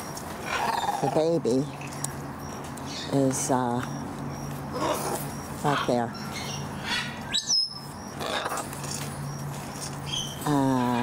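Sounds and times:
steady low hum: 0.0s - 11.0s
faint repeated high chirps: 1.8s - 4.6s, 5.2s - 6.6s, 8.9s - 10.4s
bird sharp rising chirp: 3.9s - 8.6s.

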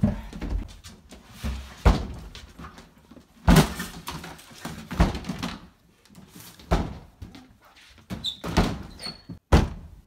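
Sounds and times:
wooden door thudding against frame: 8.4s - 9.9s.

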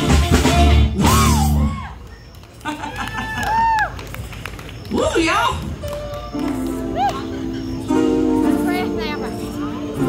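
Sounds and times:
live band music: 0.0s - 1.8s, 5.6s - 10.0s
people whooping: 1.0s - 4.3s, 5.8s - 7.8s.

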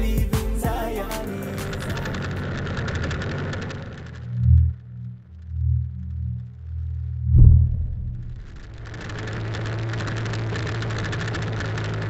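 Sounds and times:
motorcycle engine running: 7.6s - 12.0s.

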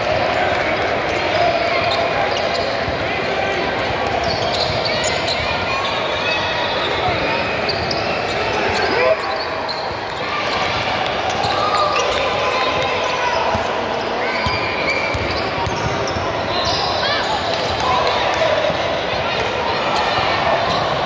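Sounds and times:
chatter of players and spectators: 0.0s - 21.0s.

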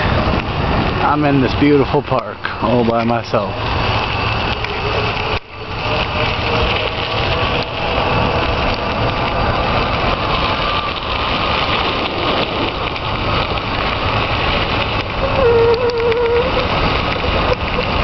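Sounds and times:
tyres rolling on gravel: 0.0s - 18.0s
wind noise on microphone: 0.0s - 18.0s.

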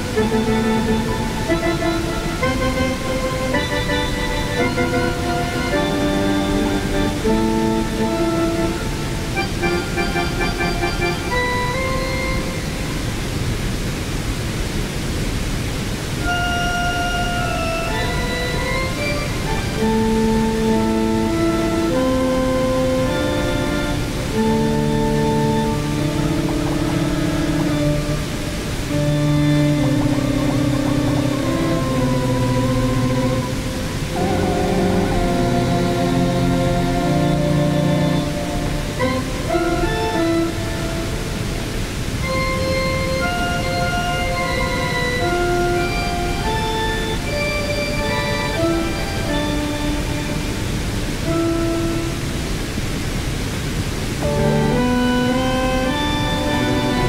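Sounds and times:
synthesizer music through small speaker: 0.0s - 13.1s, 16.3s - 52.0s, 54.2s - 57.0s
waterfall rushing: 0.0s - 57.0s.

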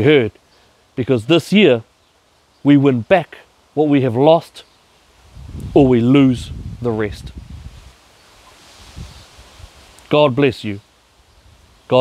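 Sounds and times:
leaves rustling in breeze: 0.0s - 12.0s.

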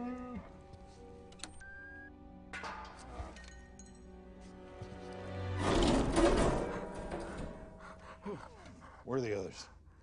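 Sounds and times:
orchestral film music: 0.0s - 8.4s
metal hatch clattering open: 5.6s - 7.9s.

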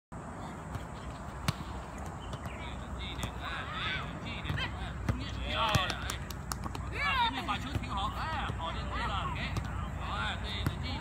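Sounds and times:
football kicks: 0.6s - 11.0s.

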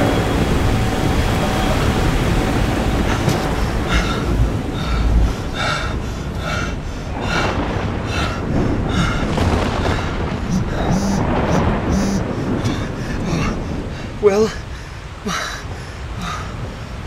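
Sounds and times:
continuous rumbling noise: 0.0s - 17.0s.

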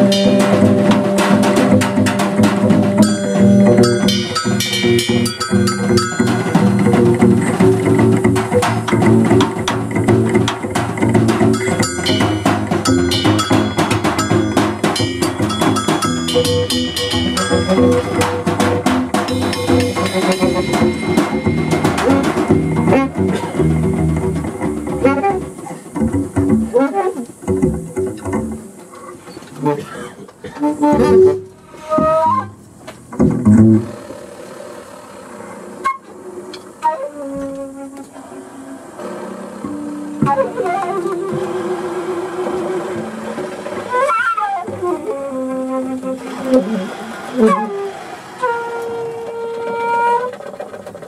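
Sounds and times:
plucked double bass: 0.0s - 28.9s, 30.7s - 34.0s, 39.6s - 47.7s.

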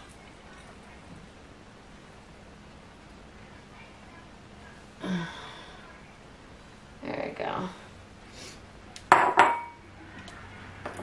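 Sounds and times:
kitchenware clinking: 9.1s - 9.8s.

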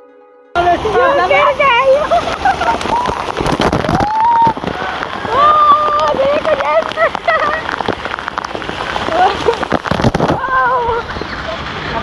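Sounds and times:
water crashing down and splashing: 0.7s - 12.0s.

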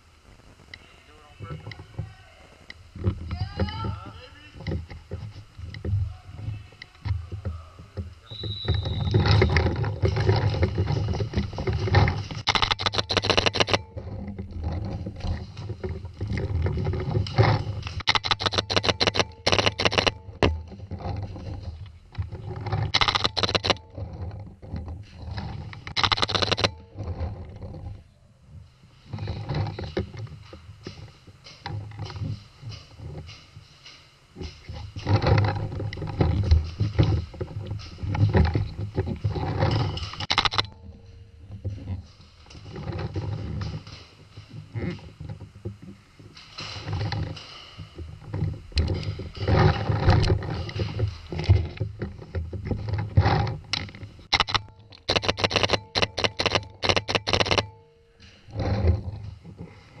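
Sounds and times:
gear clatter and knocks: 2.8s - 60.0s.

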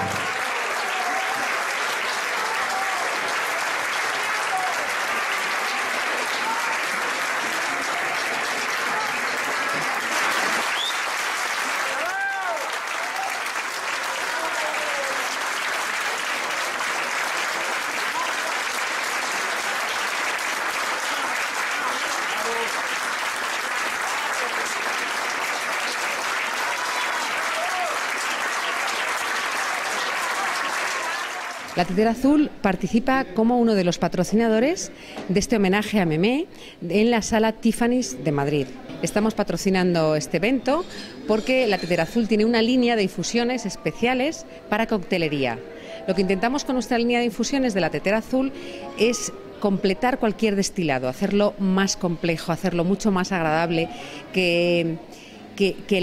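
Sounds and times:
audience applauding: 0.0s - 32.0s.

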